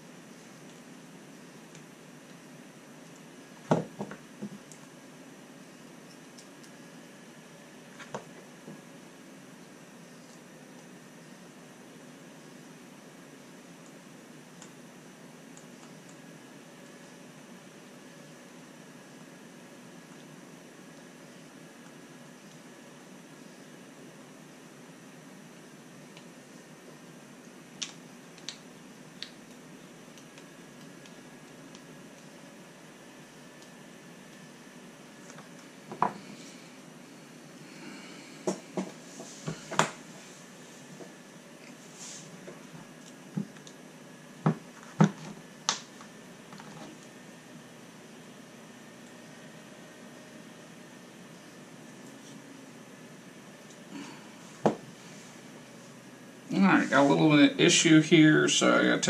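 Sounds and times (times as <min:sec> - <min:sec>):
faint room hum: 0:00.0 - 0:59.0.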